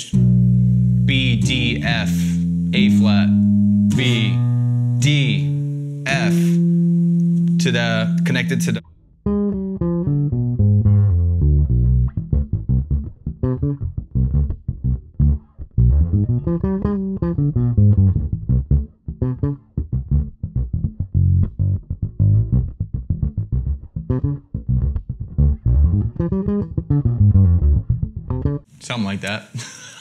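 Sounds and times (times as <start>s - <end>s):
electric bass plucked lick: 0.0s - 28.7s.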